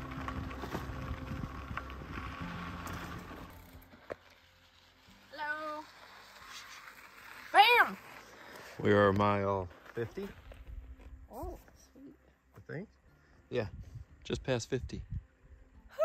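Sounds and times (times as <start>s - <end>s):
bicycle tyres rattling on dirt: 0.0s - 11.1s.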